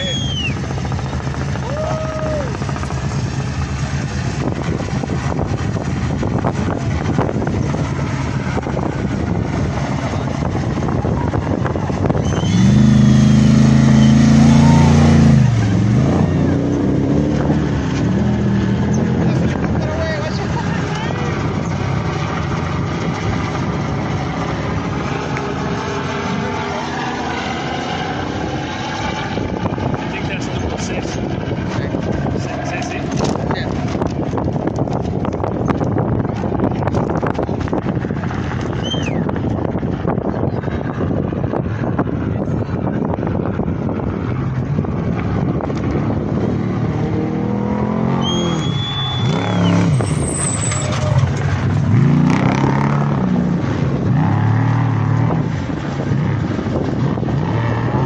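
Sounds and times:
truck engine racing past: 7.4s - 30.9s, 44.9s - 58.0s.

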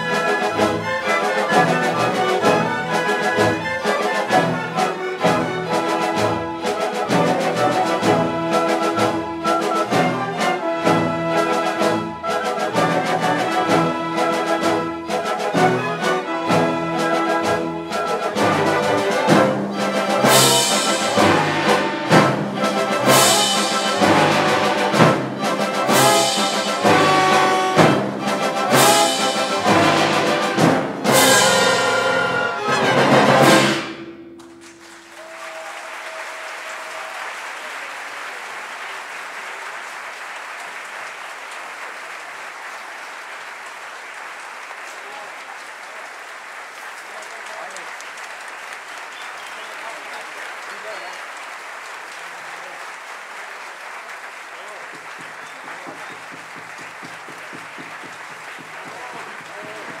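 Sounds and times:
audience applause: 0.0s - 33.6s, 34.4s - 60.0s
orchestra playing loud chords: 0.0s - 35.2s, 54.6s - 60.0s.

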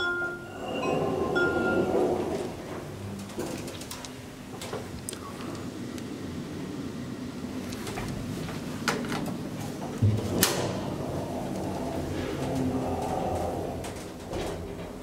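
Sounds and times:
elevator low hum: 0.0s - 15.0s.

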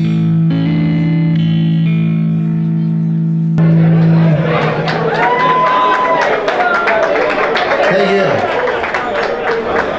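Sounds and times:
electric guitar chords: 0.0s - 6.2s.

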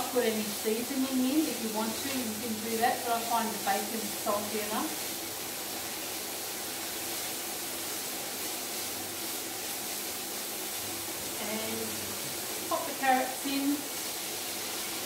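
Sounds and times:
bacon sizzling in a pan: 0.0s - 15.0s.

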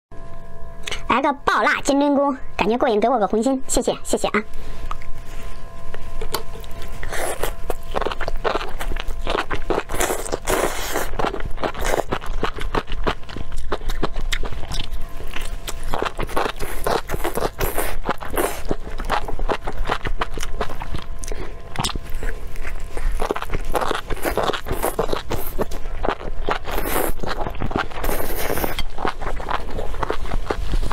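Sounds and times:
wet biting and chewing: 5.9s - 30.9s.

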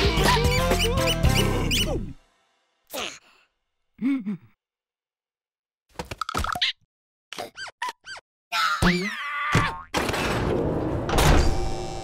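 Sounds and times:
fast cartoon music: 0.0s - 2.2s.

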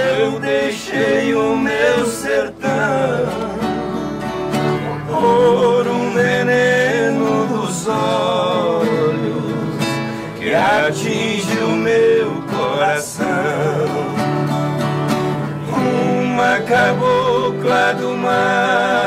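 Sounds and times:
men singing in harmony: 0.0s - 19.0s
strummed acoustic guitars: 0.0s - 19.0s.

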